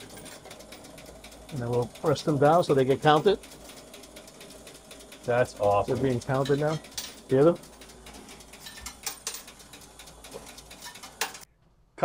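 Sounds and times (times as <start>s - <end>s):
coin mechanism humming and clicking: 0.0s - 11.5s.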